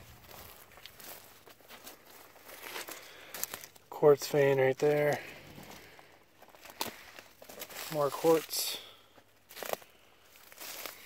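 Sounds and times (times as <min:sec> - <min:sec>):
footsteps through dry grass: 0:00.0 - 0:11.0.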